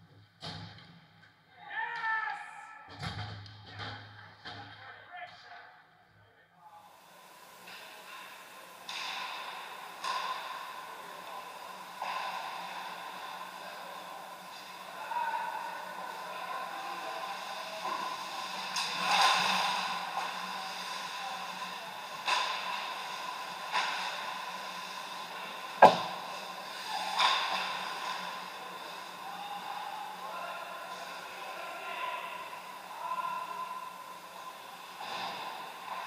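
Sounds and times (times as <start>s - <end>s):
rink hall hum: 0.0s - 36.0s
sticks and puck clacking: 25.8s - 26.3s.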